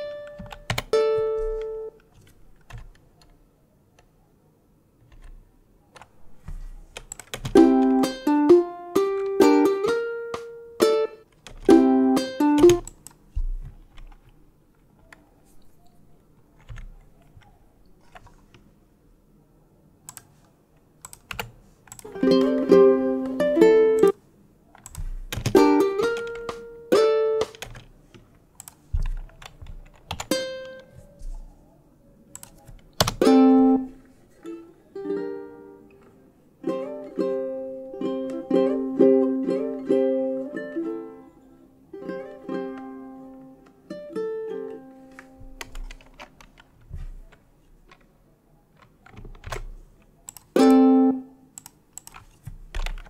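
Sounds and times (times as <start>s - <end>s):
fingerstyle ukulele plucking: 0.0s - 2.0s, 7.5s - 12.9s, 22.0s - 24.2s, 25.5s - 27.6s, 30.3s - 31.0s, 33.1s - 46.2s, 50.5s - 51.4s
computer keyboard clicking: 0.2s - 0.9s, 1.5s - 3.4s, 7.0s - 7.6s, 16.6s - 17.5s, 20.1s - 20.3s, 21.0s - 22.1s, 24.8s - 26.7s, 27.4s - 27.9s, 28.6s - 30.9s, 32.3s - 33.2s, 45.6s - 46.7s, 48.8s - 50.6s, 51.5s - 53.0s.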